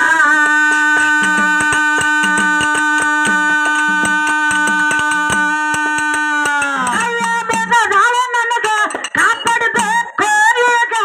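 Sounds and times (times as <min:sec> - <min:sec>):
hand drums beating quick rhythm: 0:00.0 - 0:10.2.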